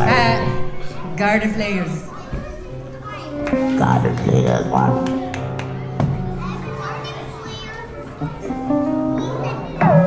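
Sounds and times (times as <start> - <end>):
children chattering: 0.0 - 10.0
keyboard and acoustic guitar chords: 3.2 - 10.0.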